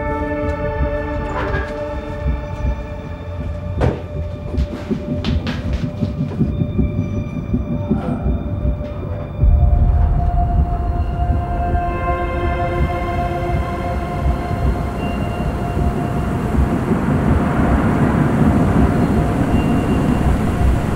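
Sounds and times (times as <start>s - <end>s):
deep rumble: 0.0s - 20.9s
sustained drone-like tones: 0.0s - 20.9s.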